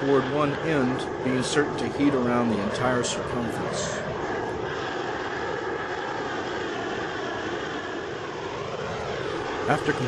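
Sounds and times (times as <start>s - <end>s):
torch flame rushing: 0.0s - 10.0s.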